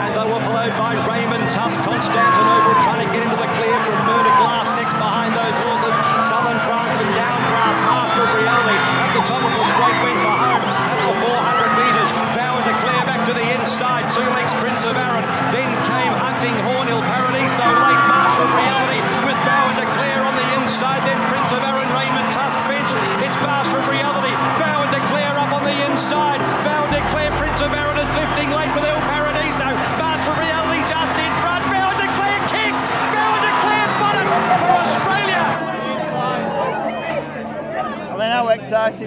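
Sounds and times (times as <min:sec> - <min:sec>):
background music: 0:00.0 - 0:39.0
crowd shouting and cheering: 0:00.0 - 0:39.0.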